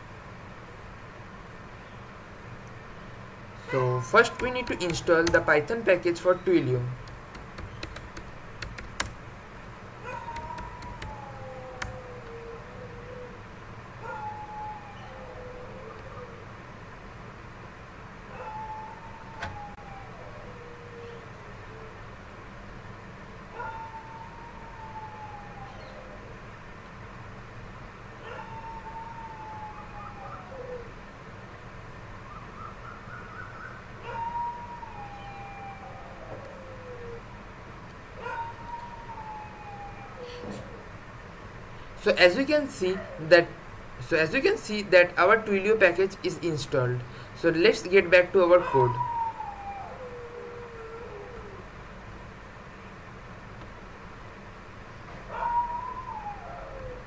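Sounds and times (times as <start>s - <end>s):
low steady hum: 0.0s - 57.0s
howl-like calls: 3.6s - 6.5s, 10.0s - 16.6s, 18.2s - 22.1s, 23.5s - 26.5s, 28.2s - 31.1s, 32.2s - 37.5s, 38.2s - 41.0s, 48.5s - 51.8s, 55.2s - 57.0s.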